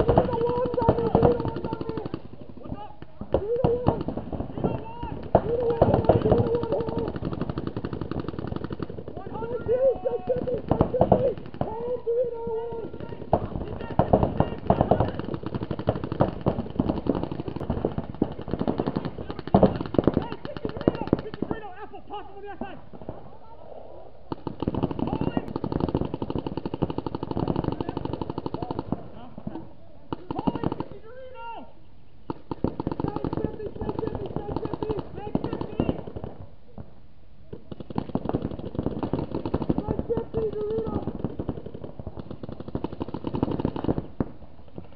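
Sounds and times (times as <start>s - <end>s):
players shouting: 0.0s - 8.3s, 9.1s - 17.8s
paintball markers firing: 0.0s - 21.7s, 24.3s - 29.0s, 37.5s - 44.9s.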